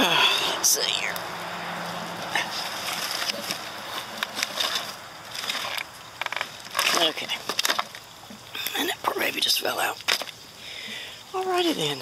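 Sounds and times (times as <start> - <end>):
crunching in dry leaves: 1.0 - 8.8.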